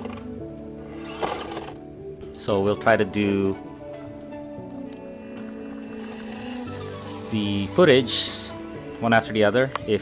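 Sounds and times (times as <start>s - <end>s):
background music sustained chords: 0.0s - 10.0s.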